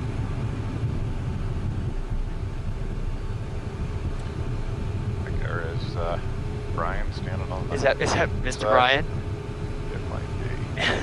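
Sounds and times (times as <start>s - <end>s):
faint steady tones: 0.0s - 11.0s
jet engines idling rumble: 0.0s - 11.0s.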